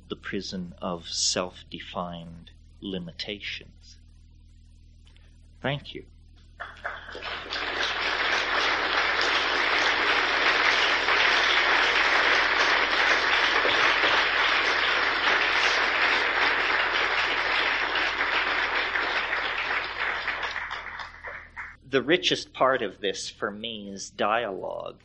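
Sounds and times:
audience applauding: 0:06.6 - 0:21.8.

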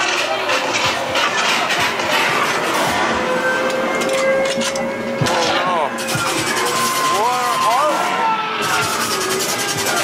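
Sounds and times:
noisy music and effects: 0:00.0 - 0:10.0.

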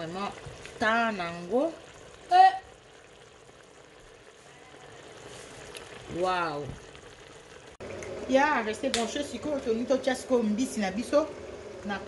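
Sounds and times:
thick sauce bubbling: 0:00.0 - 0:08.2.

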